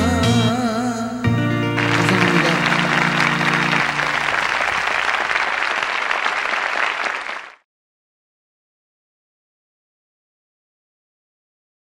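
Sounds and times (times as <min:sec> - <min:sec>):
held low chord of backing track: 0:00.0 - 0:04.7
audience applause: 0:01.8 - 0:07.6.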